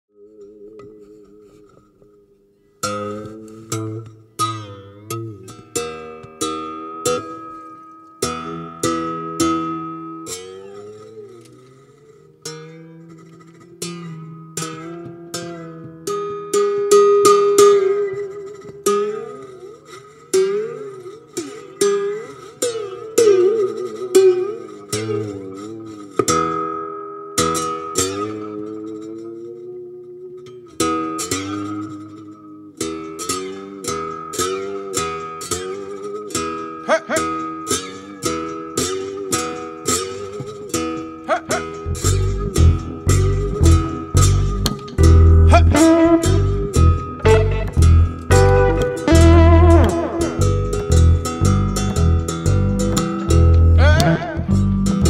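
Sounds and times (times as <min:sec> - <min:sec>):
slow blues guitar: 0:00.1 - 0:55.0.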